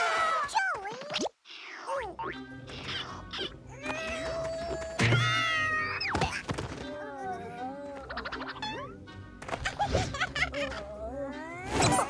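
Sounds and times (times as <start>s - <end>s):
cartoon background music: 0.6s - 12.0s.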